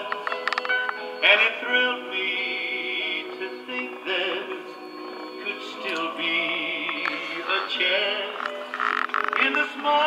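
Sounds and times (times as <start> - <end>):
music from small speaker: 0.0 - 10.0.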